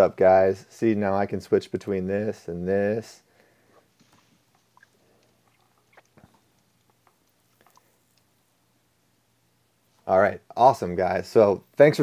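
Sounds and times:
faint clicks: 3.8s - 8.3s.

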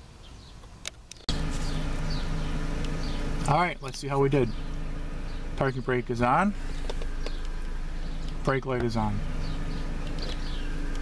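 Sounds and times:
car engine idling: 1.1s - 11.0s.

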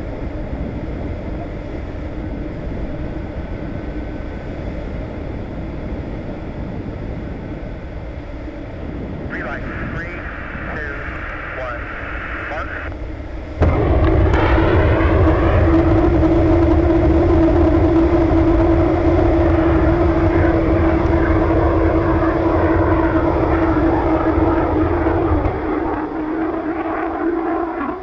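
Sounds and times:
rocket engine firing: 8.6s - 28.0s.

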